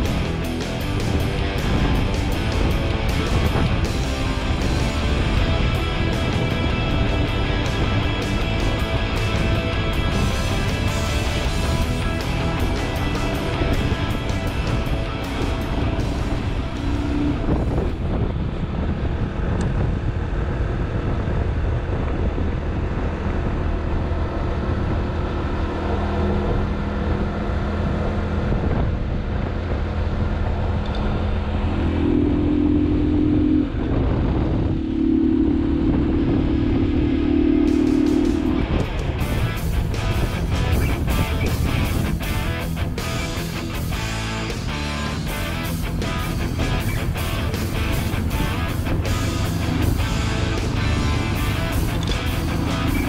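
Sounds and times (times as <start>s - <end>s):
rock and roll music: 0.0s - 18.0s, 37.5s - 53.0s
motorcycle engine: 0.0s - 53.0s
wind noise: 0.0s - 53.0s.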